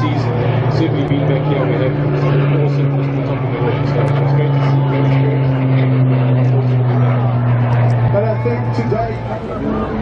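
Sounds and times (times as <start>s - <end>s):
propeller aircraft engine drone: 0.0s - 10.0s.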